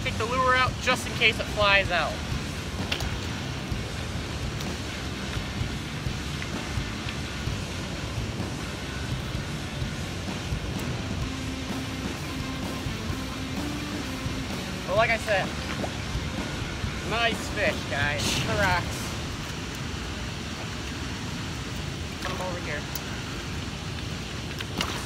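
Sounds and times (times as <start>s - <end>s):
faint music: 0.0s - 25.0s
river water: 0.0s - 25.0s.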